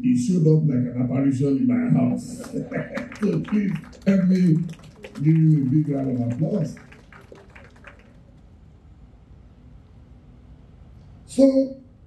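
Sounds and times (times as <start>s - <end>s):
quiet hall hum: 0.0s - 12.0s
audience clapping: 2.3s - 8.5s.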